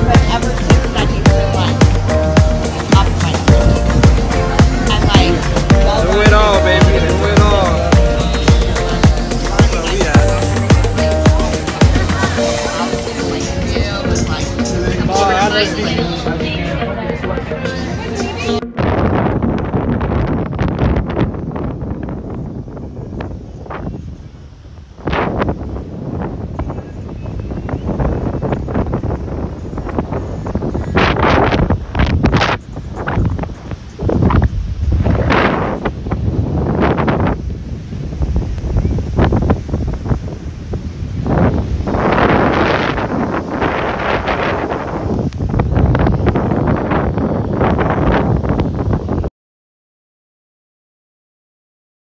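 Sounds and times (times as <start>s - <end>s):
wind buffeting microphone: 0.0s - 49.3s.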